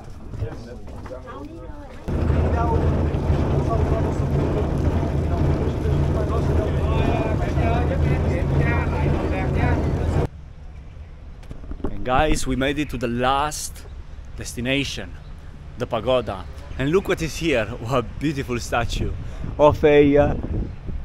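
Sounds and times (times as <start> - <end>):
rushing wind: 2.0 - 10.6, 11.2 - 21.0
boat engine droning: 2.1 - 10.3
rushing water: 2.1 - 10.3.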